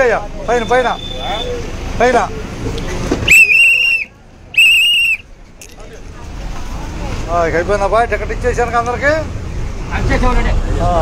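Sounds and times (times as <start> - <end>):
bus rumble: 0.0 - 11.0
shrill whistle blasts: 3.3 - 5.2.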